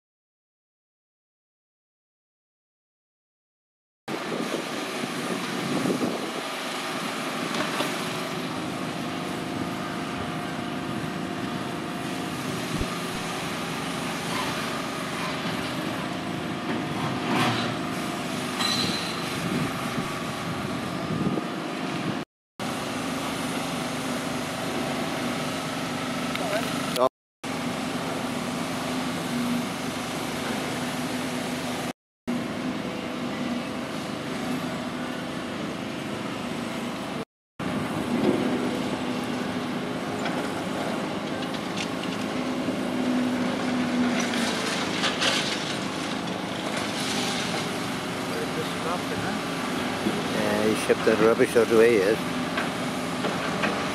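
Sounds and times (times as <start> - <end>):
excavator diesel engines running: 4.1 - 53.9.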